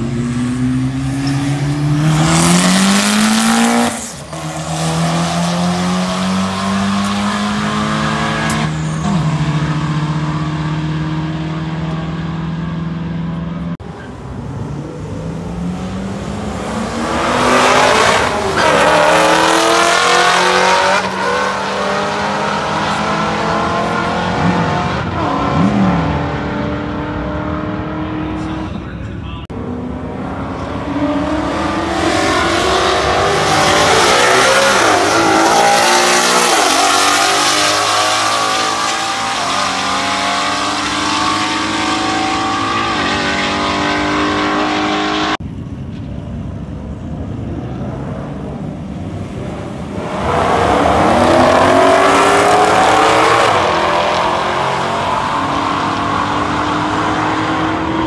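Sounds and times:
cars accelerating hard: 0.0s - 45.4s, 47.3s - 58.0s.

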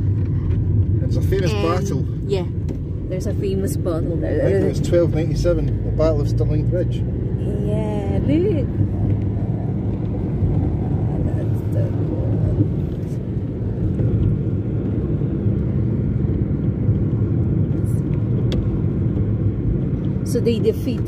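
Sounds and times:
road and engine rumble: 0.0s - 21.0s.

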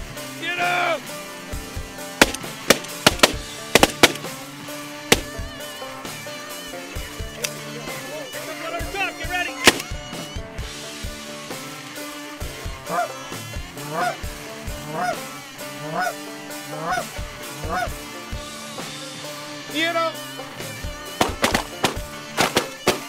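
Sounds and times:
background music: 0.0s - 23.0s
shotgun blasts: 2.2s - 4.4s, 5.1s - 5.5s, 9.6s - 10.0s, 21.2s - 23.0s.

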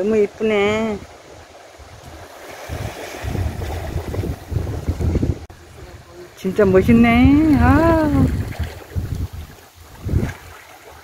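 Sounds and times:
wind buffeting microphone: 0.0s - 11.0s
small waves on pebble shore: 0.5s - 4.6s, 8.1s - 11.0s.

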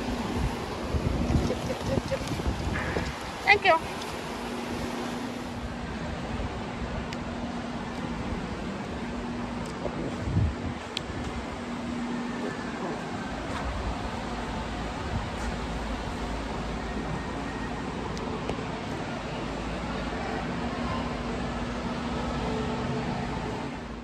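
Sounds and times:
low steady hum: 0.0s - 24.0s
ventilation fans whooshing: 0.0s - 24.0s.

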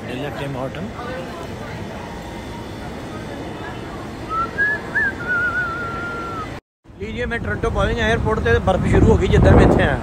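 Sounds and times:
steady background noise: 0.0s - 10.0s
person whistling a wavering tune: 4.3s - 6.6s.

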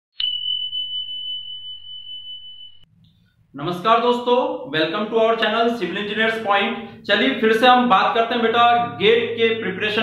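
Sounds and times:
high ding: 0.2s - 2.9s.

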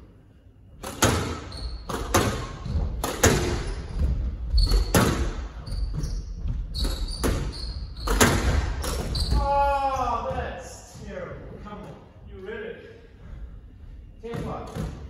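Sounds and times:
squash ball hitting rackets and walls: 0.8s - 11.2s, 14.2s - 15.0s
shoes squeaking on wooden floor: 1.4s - 11.8s.

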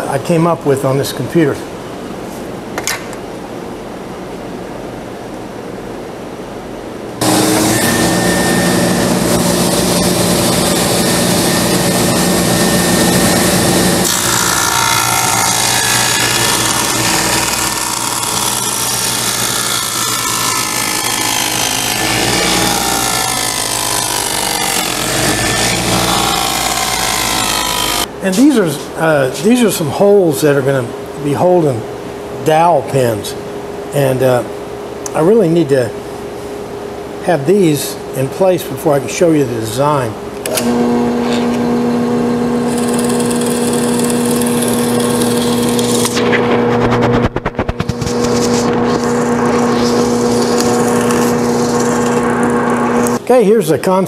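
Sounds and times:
table saw cutting wood: 7.2s - 28.6s, 40.5s - 53.2s.

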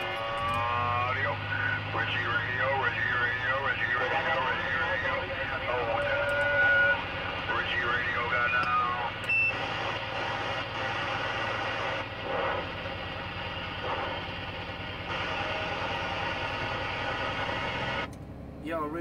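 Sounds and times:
garbled radio voices: 0.0s - 18.1s
noisy radio signal with hum: 0.0s - 18.1s
short high beep: 9.2s - 9.6s.

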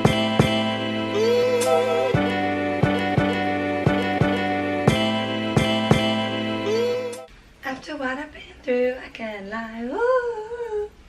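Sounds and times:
woman humming: 1.1s - 2.1s, 6.6s - 7.3s.

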